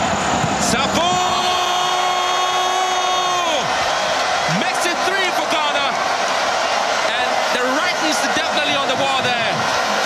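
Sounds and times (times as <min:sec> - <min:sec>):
crowd noise: 0:00.0 - 0:10.0
man shouting goal: 0:00.6 - 0:03.8.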